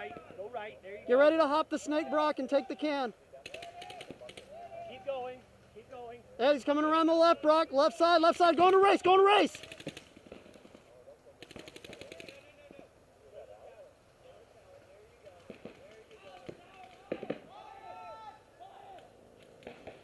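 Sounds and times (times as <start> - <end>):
faint distant shouting: 1.8 - 9.7, 16.1 - 19.2
distant paintball marker shots: 3.4 - 4.6, 9.5 - 12.4, 15.4 - 17.6, 19.4 - 20.0.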